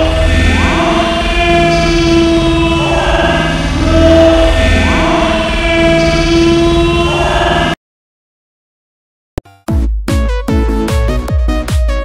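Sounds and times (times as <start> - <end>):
held horn-like chord tones: 0.0 - 7.8.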